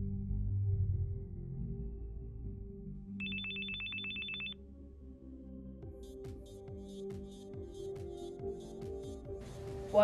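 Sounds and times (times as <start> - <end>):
telephone ringing: 3.2 - 4.6.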